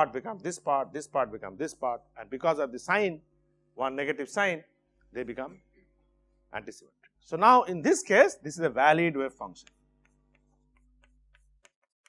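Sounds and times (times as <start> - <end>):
faint room hum: 0.0 - 11.7
chalk ticking on a blackboard: 9.6 - 12.0.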